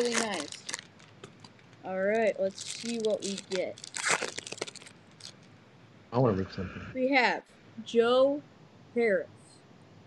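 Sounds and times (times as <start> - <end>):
foil wrapper tearing and crinkling: 0.0 - 5.4.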